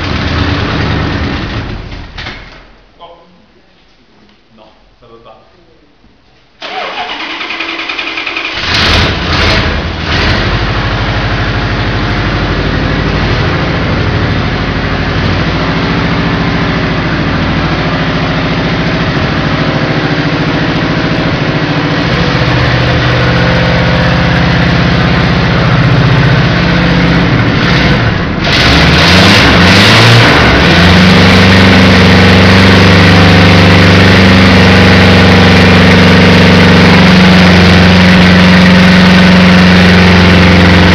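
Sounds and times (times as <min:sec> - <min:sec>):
car engine revving and idling: 0:00.0 - 0:02.2, 0:07.7 - 0:40.9
car engine cranking: 0:06.6 - 0:10.7.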